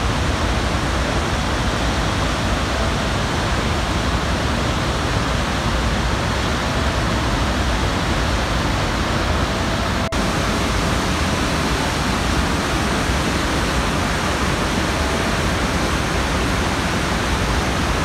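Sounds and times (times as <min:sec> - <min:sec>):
waterfall roaring: 0:00.0 - 0:18.0.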